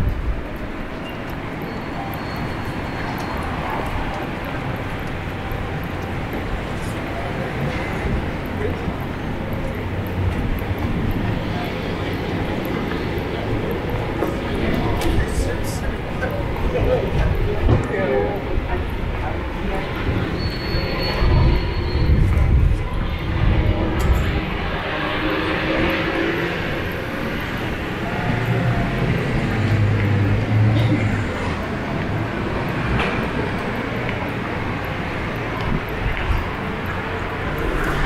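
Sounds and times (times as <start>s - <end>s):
city street traffic: 0.0s - 38.0s
voices of passersby: 0.0s - 38.0s
low engine drone: 22.4s - 38.0s.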